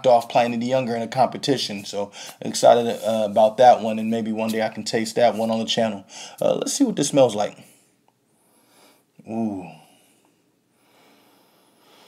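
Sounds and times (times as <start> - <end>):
faint sniffing: 2.1 - 3.3.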